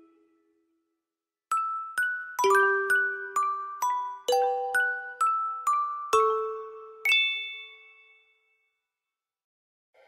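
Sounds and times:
bell-like chime: 1.5s - 8.9s.

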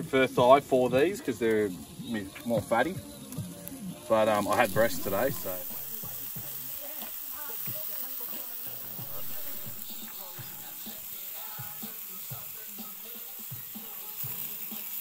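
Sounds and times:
background music: 0.0s - 15.0s
meat sizzling on a grill: 0.0s - 15.0s
faint voices: 4.1s - 13.9s.

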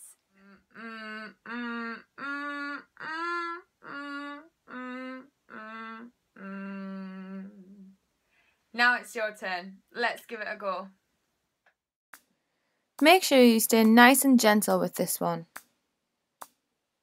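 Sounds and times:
woman humming with creak: 0.3s - 8.0s.

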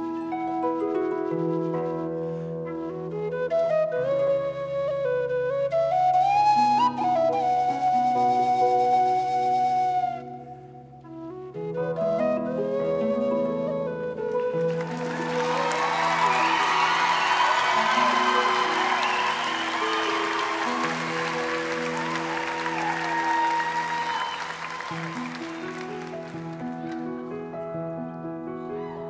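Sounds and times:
audience applauding and cheering: 14.3s - 27.4s.

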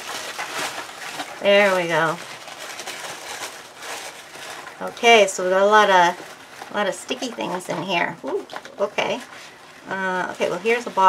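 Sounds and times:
packaging rustling: 0.0s - 11.0s.

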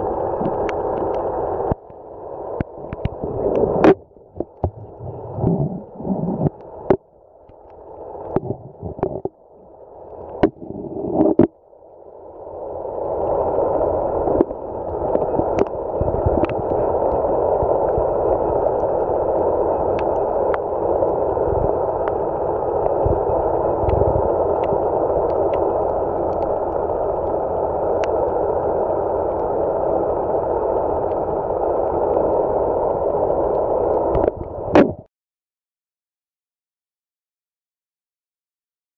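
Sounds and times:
rushing water underwater: 0.0s - 35.1s.

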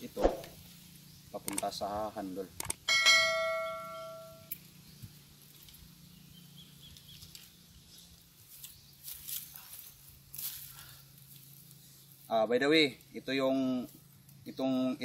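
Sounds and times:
quiet outdoor background: 0.0s - 15.0s
bell chime: 2.9s - 4.4s
faint clicks and rustles: 4.5s - 6.0s, 6.8s - 12.3s.

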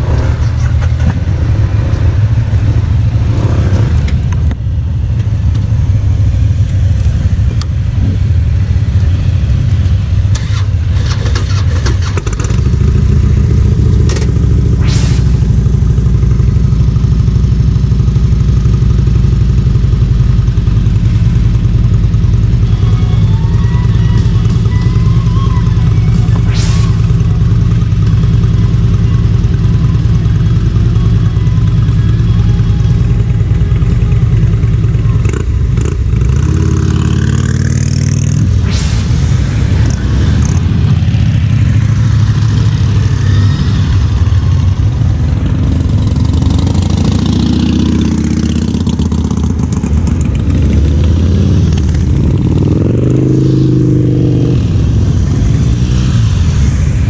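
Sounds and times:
motorcycle engines idling: 0.0s - 53.8s
motorcycle engines revving: 0.0s - 57.0s.

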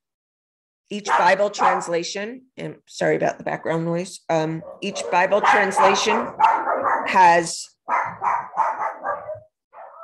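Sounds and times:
dog barking: 1.0s - 2.0s, 4.6s - 10.0s.

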